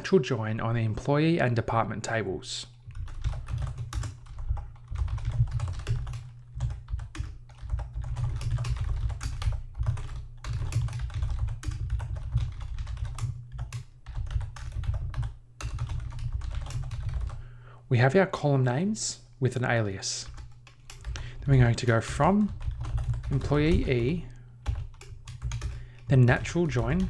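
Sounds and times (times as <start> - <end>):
typing on computer keyboard: 2.9 - 17.4, 20.2 - 27.0.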